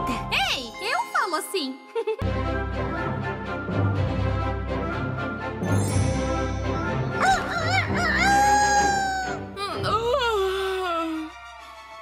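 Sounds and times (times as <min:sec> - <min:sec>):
background music: 0:00.0 - 0:12.0
cartoon creature crowing: 0:07.2 - 0:09.5.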